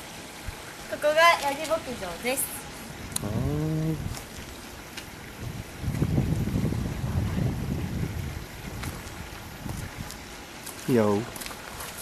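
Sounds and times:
wind buffeting microphone: 0:01.6 - 0:11.4.

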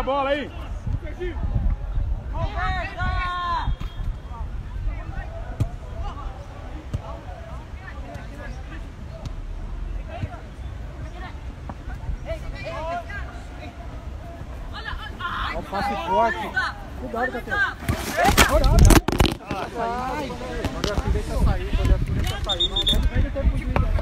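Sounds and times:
players shouting: 0:12.4 - 0:18.7.

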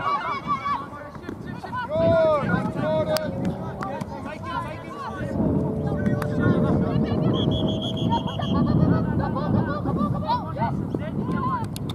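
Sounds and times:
steady low rumble: 0:01.8 - 0:11.9.

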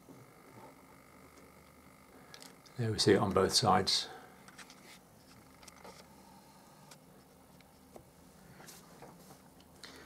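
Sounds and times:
low hum: 0:00.0 - 0:08.7.

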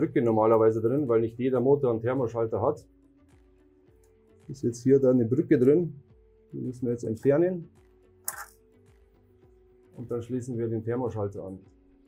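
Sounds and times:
faint steady background: 0:00.0 - 0:12.0.

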